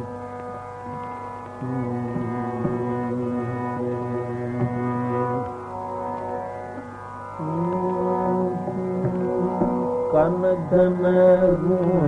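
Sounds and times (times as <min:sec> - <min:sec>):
tambura drone: 0:00.0 - 0:12.0
men singing a long held note: 0:01.6 - 0:05.5, 0:07.4 - 0:12.0.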